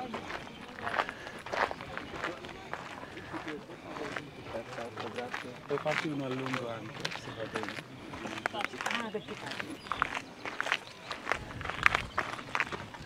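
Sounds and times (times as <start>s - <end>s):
footsteps on gravel: 0.0s - 13.0s
indistinct chatter: 0.0s - 13.0s.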